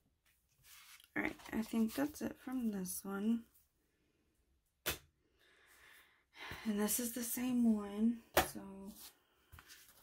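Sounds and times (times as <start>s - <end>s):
soft rustle: 0.4s - 2.2s.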